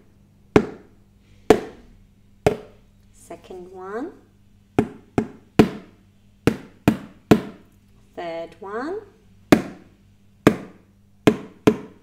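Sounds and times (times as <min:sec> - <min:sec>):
wooden spoon tapping plastic container: 0:04.8 - 0:05.9.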